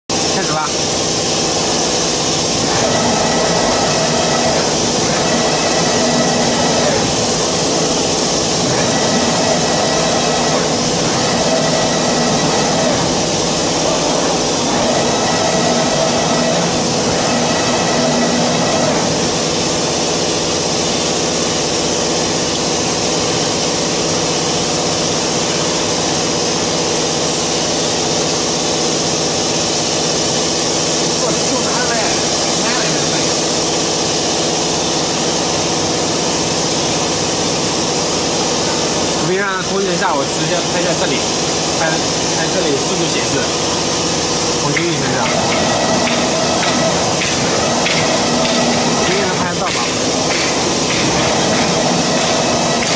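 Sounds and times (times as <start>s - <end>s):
cnc router rushing hiss: 0.1s - 52.9s
whining tones: 2.5s - 20.2s, 43.1s - 52.9s.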